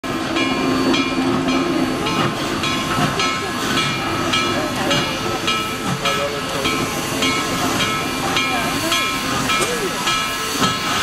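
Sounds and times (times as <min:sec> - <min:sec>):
steam locomotive exhaust beating: 0:00.0 - 0:11.0
steam hissing: 0:00.1 - 0:11.0.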